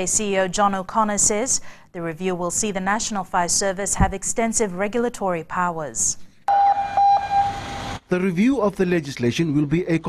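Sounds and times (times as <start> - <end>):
fire engine siren: 6.5 - 8.0
truck noise: 6.5 - 8.1.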